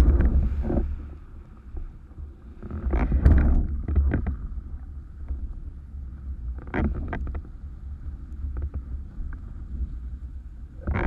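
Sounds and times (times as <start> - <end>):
sharp crackles and knocks: 0.0 - 10.0, 10.8 - 11.0
wind buffeting microphone: 0.0 - 11.0.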